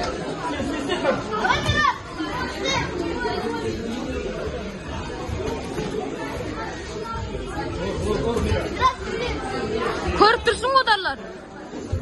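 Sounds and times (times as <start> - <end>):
crowd chatter echoing in hall: 0.0 - 12.0.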